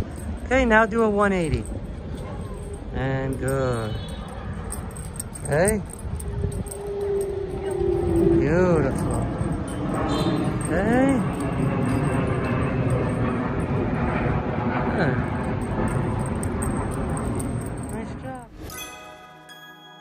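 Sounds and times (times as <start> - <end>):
street background noise: 0.0 - 18.9
music: 18.6 - 20.0.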